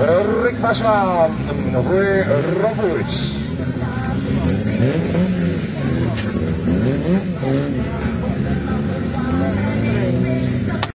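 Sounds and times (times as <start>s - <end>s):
car engines revving: 0.0s - 10.9s.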